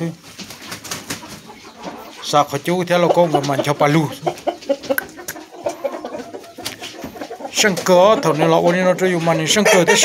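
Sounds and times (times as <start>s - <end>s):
rooster clucking: 1.0s - 10.0s.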